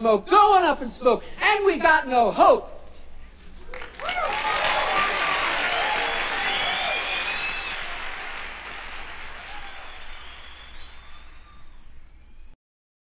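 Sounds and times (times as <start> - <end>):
audience applauding: 3.6 - 11.8.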